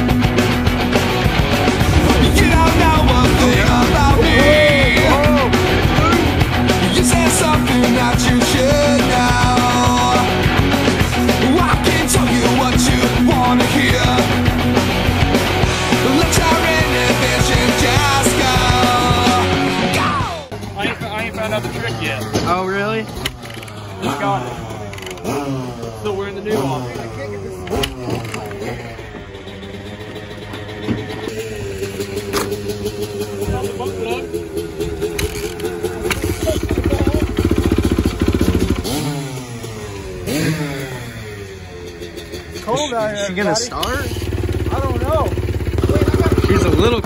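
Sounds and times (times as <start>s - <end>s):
dirt bike engines revving: 0.0s - 47.0s.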